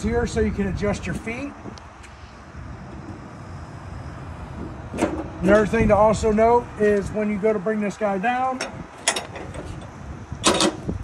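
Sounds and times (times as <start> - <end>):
metal rattle: 8.6 - 10.9.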